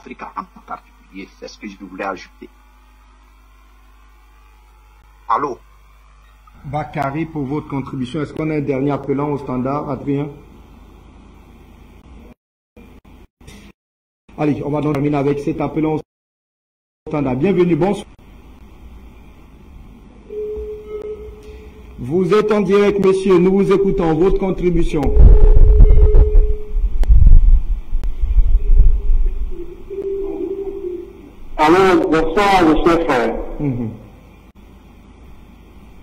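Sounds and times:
low electrical hum: 0.0s - 13.7s, 14.3s - 16.0s, 17.1s - 36.0s
telephone line tone: 20.3s - 26.9s, 28.6s - 31.3s.

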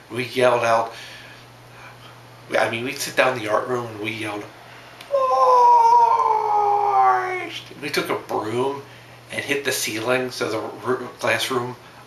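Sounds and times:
man yelling: 5.1s - 7.6s.

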